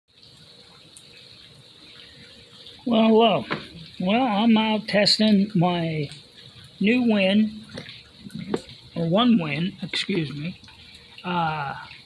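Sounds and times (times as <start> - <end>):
rain falling: 0.1 - 12.0.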